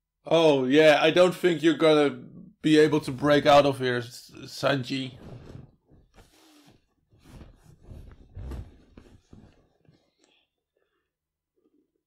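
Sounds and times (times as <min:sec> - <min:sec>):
rustling: 0:05.1 - 0:10.2.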